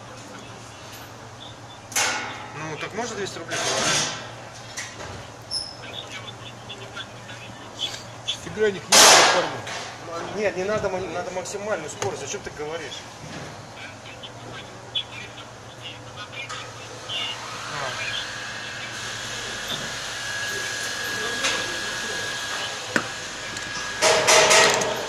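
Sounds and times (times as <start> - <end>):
faint distant voices: 0.0 - 25.0
steady high whine: 0.0 - 25.0.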